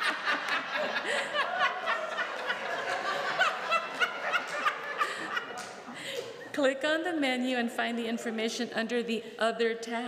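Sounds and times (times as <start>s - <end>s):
people laughing: 0.0s - 6.5s.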